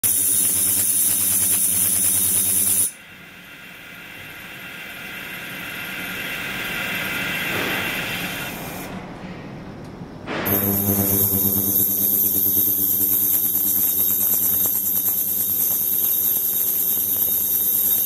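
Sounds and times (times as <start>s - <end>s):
ultrasonic cleaner buzzing and hissing: 0.0s - 3.0s, 10.5s - 18.0s.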